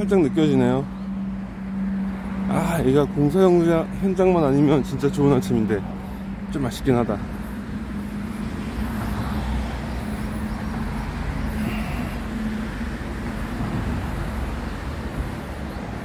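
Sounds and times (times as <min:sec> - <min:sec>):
road traffic rumble: 0:00.0 - 0:16.0.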